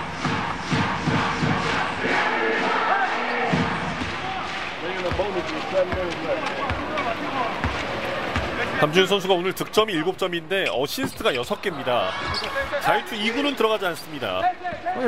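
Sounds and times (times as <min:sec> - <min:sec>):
crowd chanting: 0:00.0 - 0:08.7.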